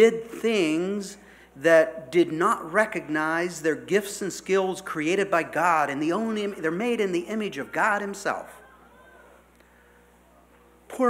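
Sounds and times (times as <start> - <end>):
man speaking: 0.0 - 8.6
low steady hum: 0.0 - 11.0.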